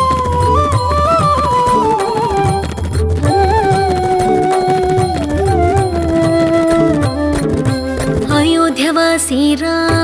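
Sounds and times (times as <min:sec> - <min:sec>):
flute gliding notes: 0:00.0 - 0:08.9
tabla strokes: 0:00.0 - 0:10.0.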